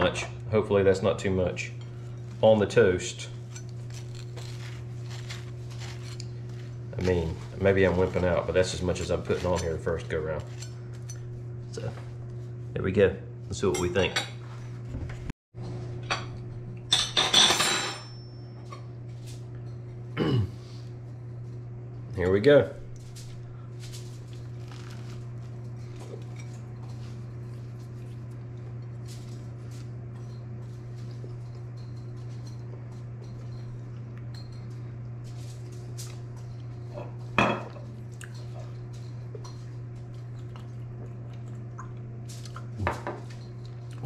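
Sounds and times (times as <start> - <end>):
steady low hum: 0.0 - 44.0
person chewing toast: 3.4 - 7.0, 23.6 - 33.1, 37.9 - 42.9.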